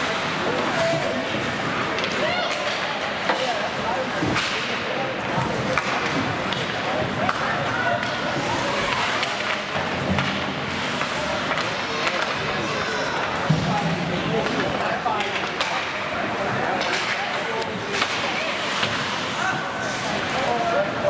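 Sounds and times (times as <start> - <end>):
steady rink noise: 0.0 - 21.0
hockey sticks and puck knocking: 4.2 - 20.4.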